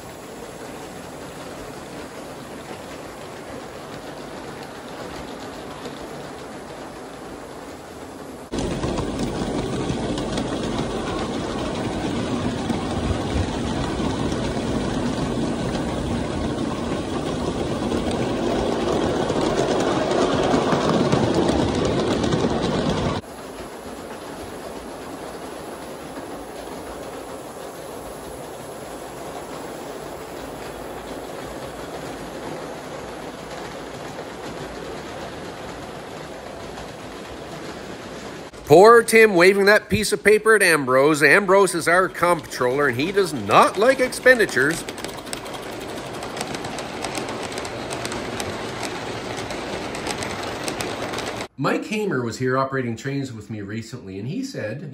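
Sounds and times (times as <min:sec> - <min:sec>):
model steam locomotive running: 0:00.0 - 0:51.5.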